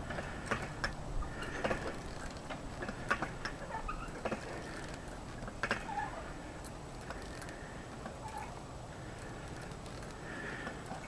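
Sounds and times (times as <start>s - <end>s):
swing hardware creaking: 0.0s - 11.0s
swing squeak: 0.1s - 8.6s.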